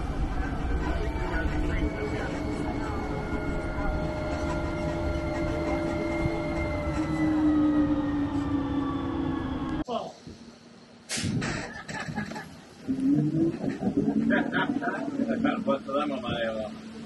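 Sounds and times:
low rumble: 0.0s - 9.8s, 12.0s - 17.0s
tram drive whine: 0.0s - 17.0s.

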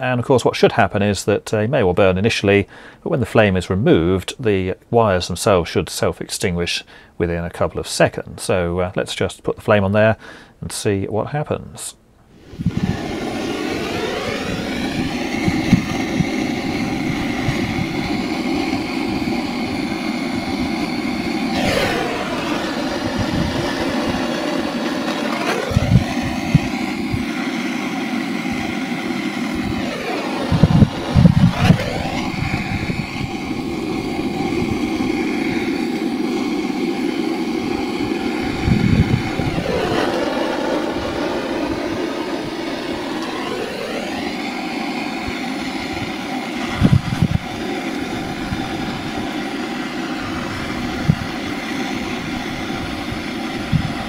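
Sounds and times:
blowtorch flame roaring: 12.3s - 54.0s
wind thumps on microphone: 12.4s - 27.4s, 29.5s - 35.6s, 38.4s - 43.3s, 46.7s - 49.3s, 50.3s - 51.5s.

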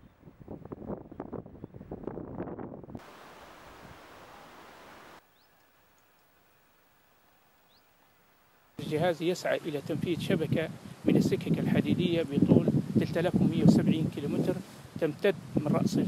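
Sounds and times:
wind buffeting microphone: 0.0s - 3.0s, 8.8s - 16.0s
steady even hiss: 3.0s - 15.7s.

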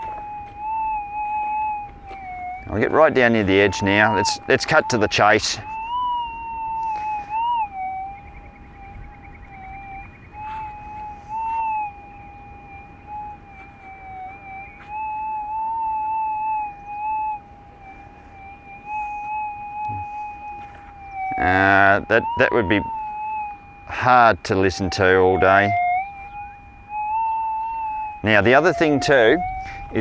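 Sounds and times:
metal detector electronic hum: 0.0s - 30.0s.

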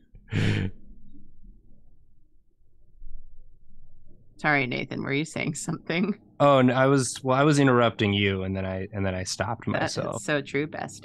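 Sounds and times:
person breathy exhale: 0.3s - 0.7s.

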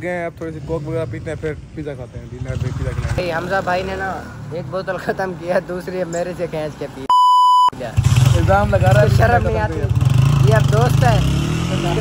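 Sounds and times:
censor bleep: 7.1s - 7.8s.

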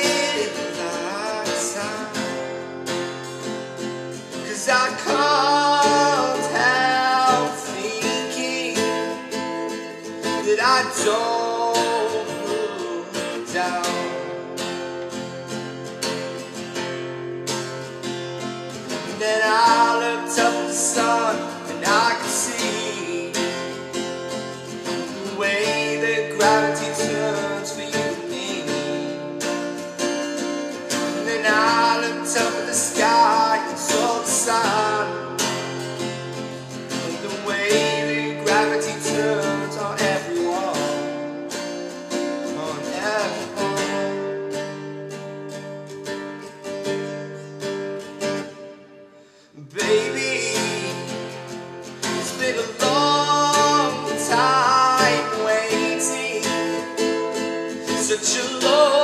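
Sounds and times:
man singing: 0.0s - 3.2s, 3.9s - 15.4s, 18.8s - 44.9s, 49.5s - 59.0s
strummed acoustic guitar: 0.0s - 59.0s.

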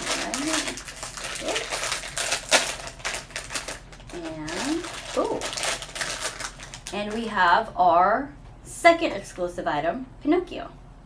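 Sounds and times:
foil bag crinkling and tearing: 0.0s - 7.4s.

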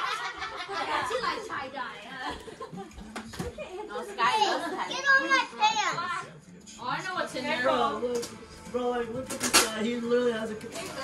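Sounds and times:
excited children's voices: 3.9s - 6.3s.

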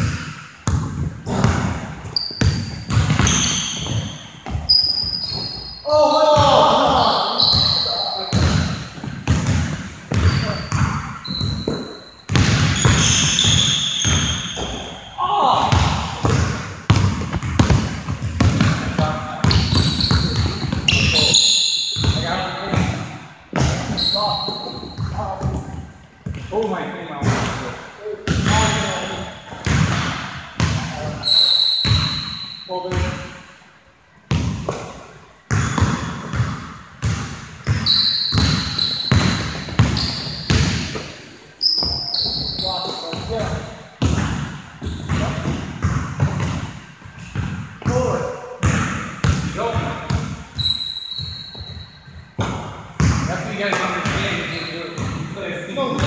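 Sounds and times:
basketball bouncing on gym floor: 0.0s - 15.0s, 15.6s - 26.5s, 27.2s - 31.2s, 31.8s - 33.2s, 34.3s - 56.0s
sneaker squeaks: 0.0s - 33.4s, 34.3s - 56.0s.

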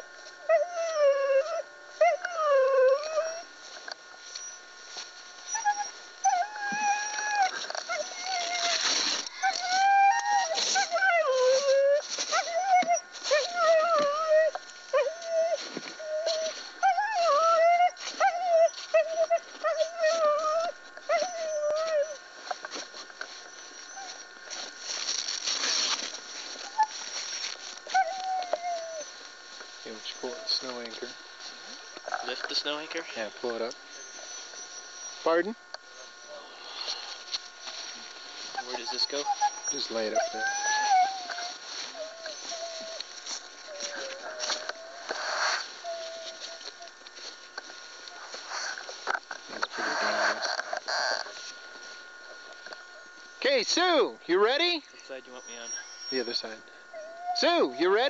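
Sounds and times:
sled dogs whining and howling: 0.3s - 3.5s, 4.2s - 29.3s, 29.9s - 31.1s, 31.7s - 35.4s, 37.6s - 51.5s, 55.3s - 58.0s.

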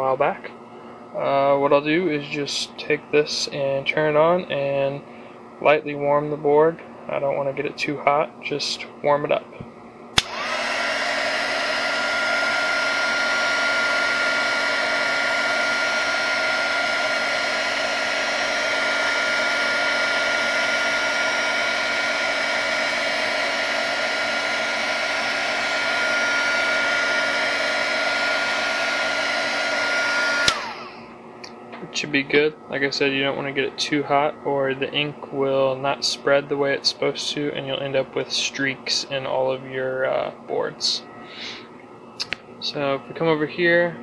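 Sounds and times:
heat gun fan whine: 0.0s - 44.0s
heat gun blowing air: 10.2s - 31.1s.

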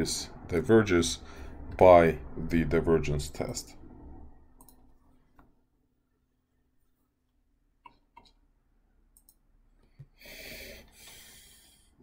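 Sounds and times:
soft computer mouse clicks: 4.6s - 5.5s, 9.2s - 9.4s.

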